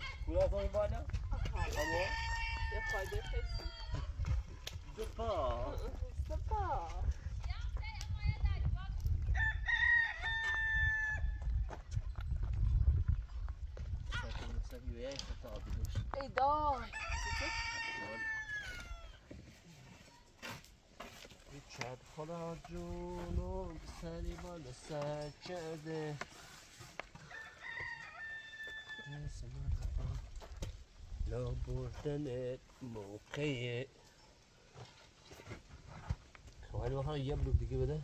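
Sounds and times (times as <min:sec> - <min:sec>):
rooster crowing: 0:01.4 - 0:04.0, 0:09.3 - 0:11.4, 0:16.9 - 0:19.2, 0:27.2 - 0:29.2.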